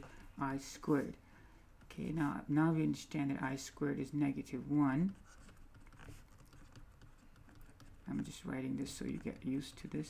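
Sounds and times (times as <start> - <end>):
stylus tapping on pen tablet: 5.1 - 10.0.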